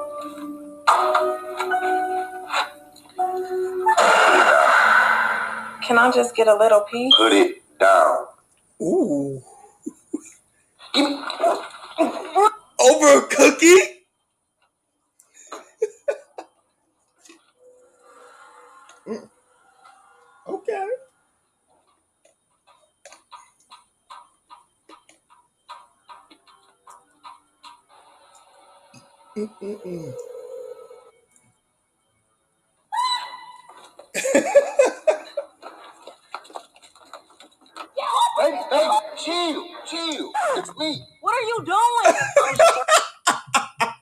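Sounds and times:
loud noisy jump-scare hit: 4.0 - 5.8
footsteps on concrete floor: 35.6 - 38.0.

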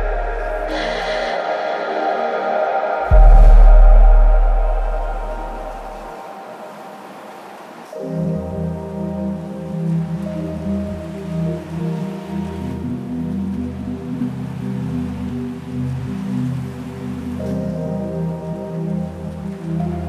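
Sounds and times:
steady deep bass: 0.0 - 1.3, 3.0 - 6.1
slow sustained synth chords: 0.0 - 20.0.

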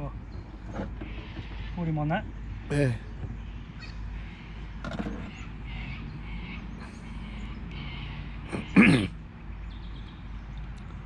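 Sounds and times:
low outdoor hum: 0.0 - 11.0
bird calling: 2.5 - 9.1.

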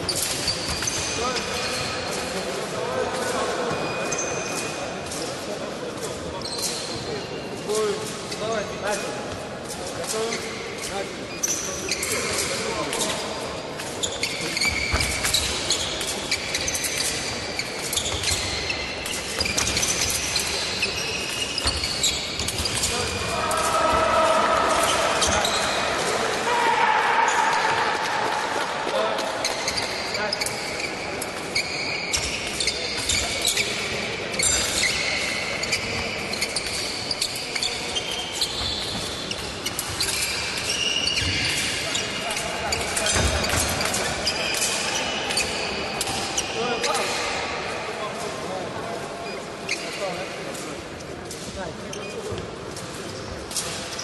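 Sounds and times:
shoes squeaking and stamping: 14.0 - 26.1, 28.9 - 45.7.

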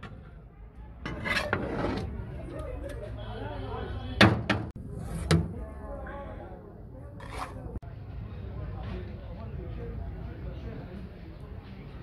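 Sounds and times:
people talking: 0.0 - 4.5, 5.2 - 12.0.

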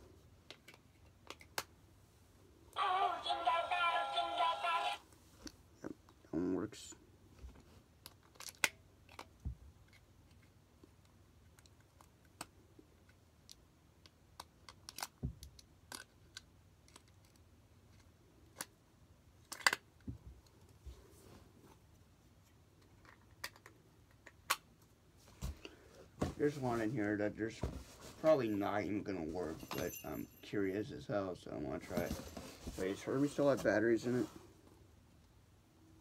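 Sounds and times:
small clicks and taps on toy: 0.5 - 1.7, 22.8 - 24.6.

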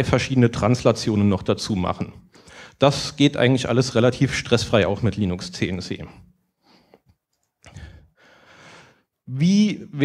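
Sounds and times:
man breathing into microphone: 7.7 - 9.1.

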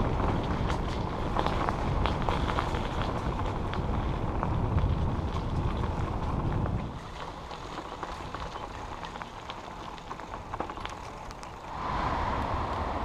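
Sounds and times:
bicycle tyres rumbling on gravel: 0.0 - 13.0
grit and bike rattles: 0.0 - 13.0
wind: 0.0 - 13.0.

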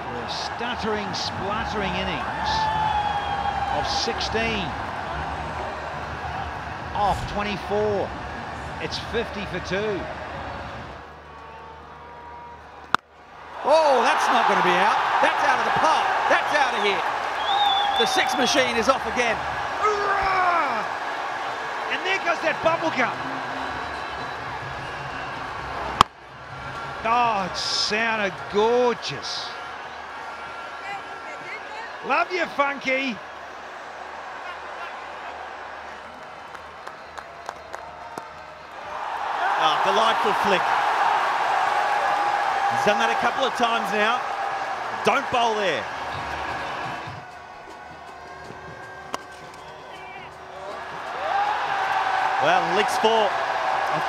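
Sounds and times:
stadium crowd noise: 0.0 - 54.0.

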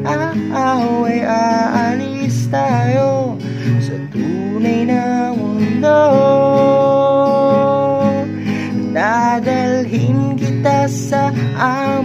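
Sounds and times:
acoustic guitar strumming: 0.0 - 12.0
person singing: 0.0 - 12.0.

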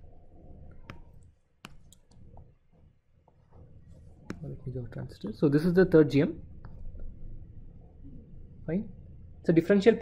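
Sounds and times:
stylus tapping on screen: 0.6 - 4.6.

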